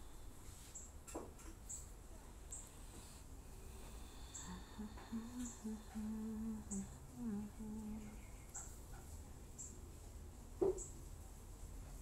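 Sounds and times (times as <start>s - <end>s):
woman humming: 4.4s - 8.2s.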